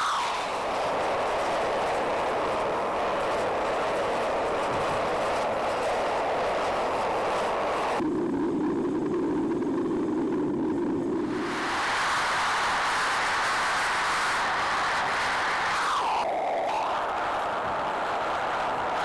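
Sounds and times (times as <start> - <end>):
furnace burner roaring: 0.0 - 19.0.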